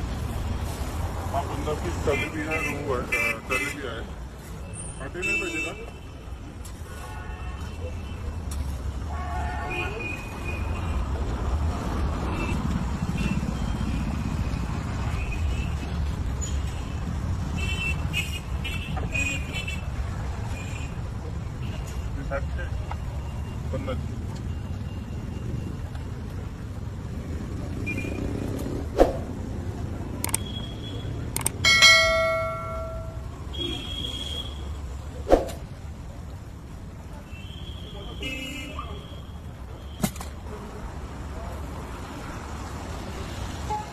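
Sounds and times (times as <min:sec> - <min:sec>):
traffic rumble: 0:00.0 - 0:43.9.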